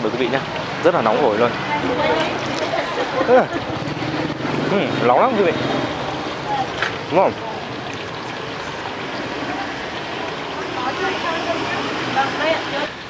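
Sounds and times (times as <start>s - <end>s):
noisy street background: 0.0s - 13.0s.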